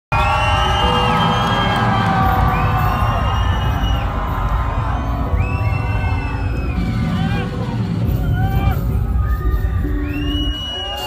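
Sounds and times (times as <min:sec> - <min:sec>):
bass-heavy music through speakers: 0:00.1 - 0:11.0
crowd cheering: 0:00.1 - 0:11.0.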